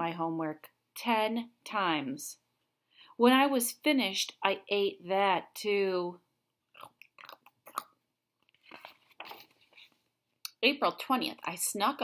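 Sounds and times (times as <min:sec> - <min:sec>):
book page turning: 0:08.4 - 0:10.1.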